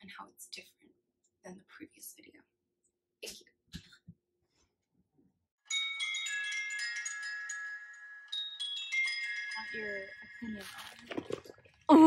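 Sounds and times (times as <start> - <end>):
bright chiming bell jingle: 5.7 - 11.2.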